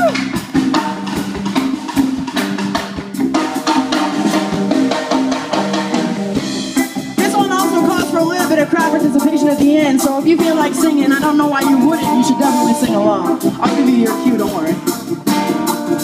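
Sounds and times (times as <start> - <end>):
drum kit beat: 0.0 - 16.0
live band playing: 0.0 - 16.0
person singing: 7.2 - 14.9.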